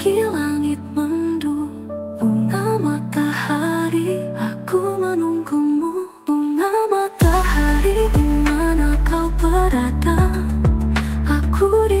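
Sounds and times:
pop lead melody over chords: 0:00.0 - 0:12.0
deep bass: 0:07.2 - 0:12.0.

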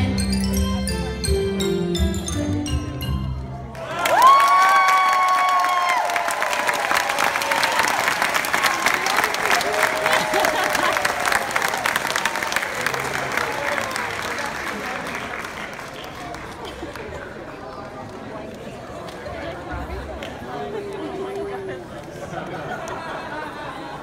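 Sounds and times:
recital music: 0:00.0 - 0:03.8
audience applause: 0:03.7 - 0:17.7
person cheering whoo: 0:03.8 - 0:06.7.

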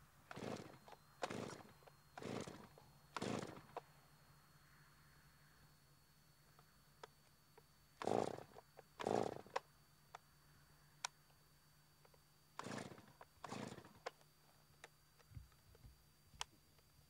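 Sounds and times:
chainsaw starter cord pulls: 0:00.3 - 0:03.8, 0:08.0 - 0:09.6, 0:12.6 - 0:14.1.

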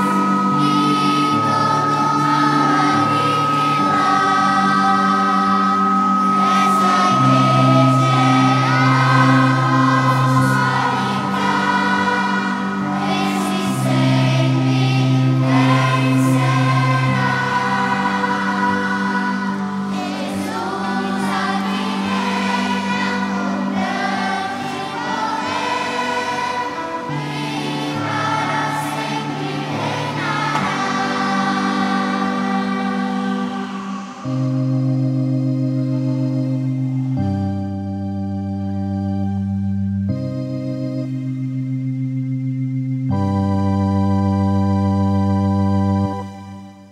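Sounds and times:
choir singing a hymn: 0:00.0 - 0:39.5
sustained low instrumental notes: 0:00.0 - 0:46.9.

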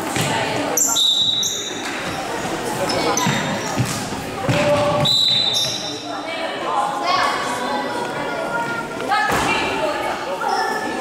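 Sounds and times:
shoes squeaking on wooden floor: 0:01.0 - 0:04.0.

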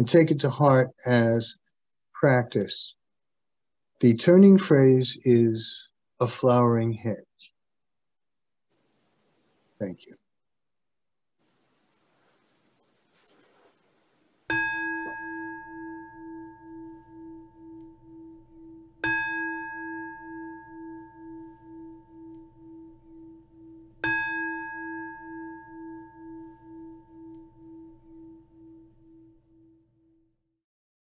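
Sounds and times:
singing bowl ringing: 0:14.5 - 0:30.2.

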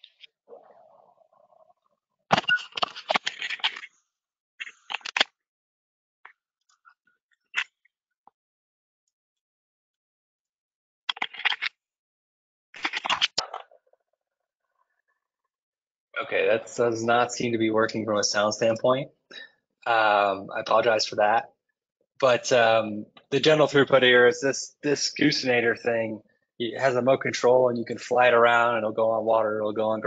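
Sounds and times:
dry clicking and scraping: 0:02.3 - 0:03.9, 0:04.6 - 0:05.3, 0:11.1 - 0:11.8, 0:12.8 - 0:13.7.

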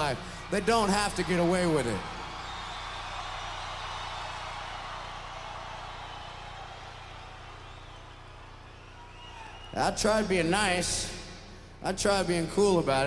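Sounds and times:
arena crowd cheering: 0:00.0 - 0:13.0
sound system hum: 0:00.0 - 0:13.0.

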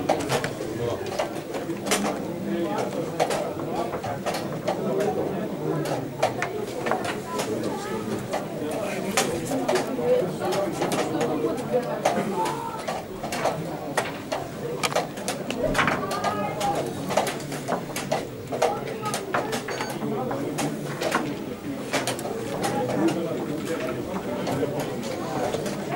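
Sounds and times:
murmur of voices: 0:00.0 - 0:25.9
chess pieces clacking on boards: 0:05.8 - 0:25.8.

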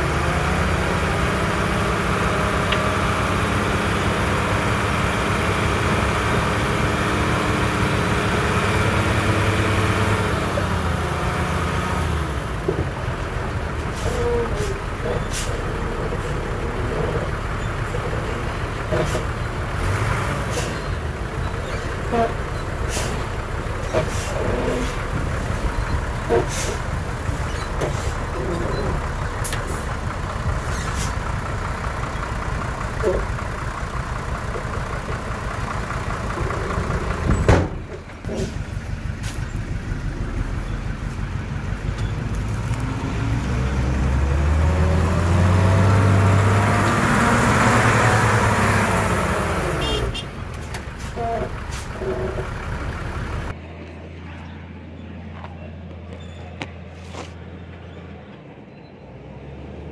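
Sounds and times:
diesel truck engine revving: 0:00.0 - 0:53.6.

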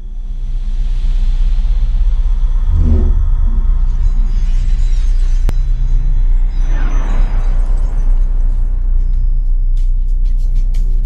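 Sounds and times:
deep cinematic drone: 0:02.0 - 0:09.1.

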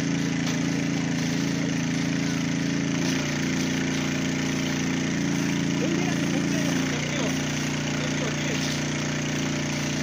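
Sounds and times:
hose jet spraying: 0:00.0 - 0:10.0
pump engine running: 0:00.0 - 0:10.0.

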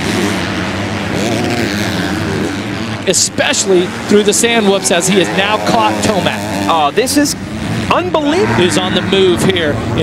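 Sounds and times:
motocross bikes racing: 0:00.0 - 0:10.0.

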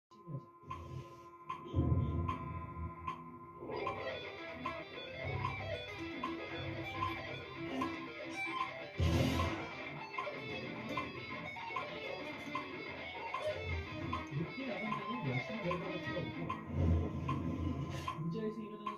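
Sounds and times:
electric guitar notes: 0:01.6 - 0:18.0
noisy hit: 0:08.9 - 0:11.0
metronome click: 0:10.2 - 0:16.6.

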